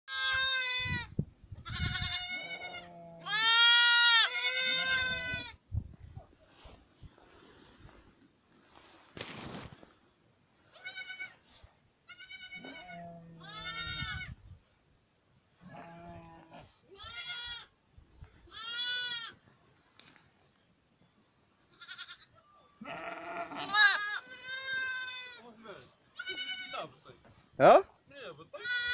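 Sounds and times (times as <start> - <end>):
lambs and goat kids bleating: 0.1 - 5.6, 10.7 - 11.4, 12.1 - 14.4, 15.6 - 17.7, 18.5 - 19.4, 21.7 - 25.4, 26.1 - 26.9, 28.5 - 28.9.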